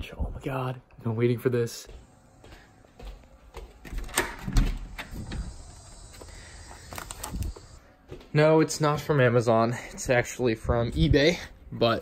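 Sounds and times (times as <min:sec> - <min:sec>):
footsteps on hardwood floor: 0:01.8 - 0:04.1, 0:06.1 - 0:08.7.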